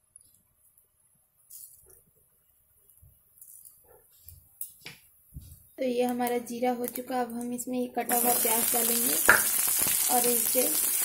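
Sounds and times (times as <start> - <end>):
seeds frying in hot oil: 8.1 - 11.0.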